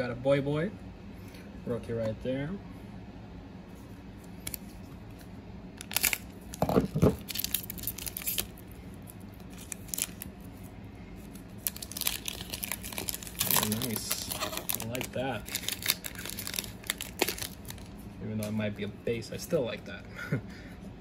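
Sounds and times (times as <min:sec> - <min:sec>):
foil wrapper crinkling and tearing: 0:05.8 - 0:18.0.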